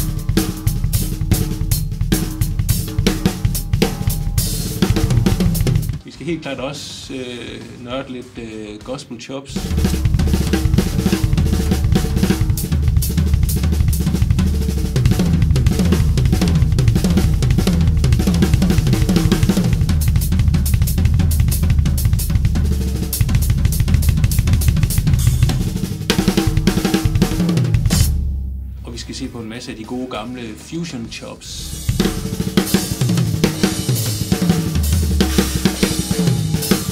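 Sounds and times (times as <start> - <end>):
cymbal and hi-hat strokes: 0.0 - 6.0, 21.9 - 28.7, 31.6 - 36.9
bass drum: 0.0 - 6.1, 9.5 - 30.3, 31.6 - 36.9
snare and tom fills: 0.0 - 28.4, 31.6 - 36.9.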